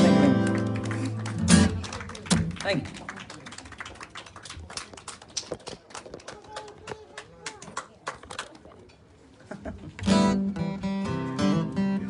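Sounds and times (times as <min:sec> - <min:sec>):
small audience applause: 0:00.1 - 0:08.6.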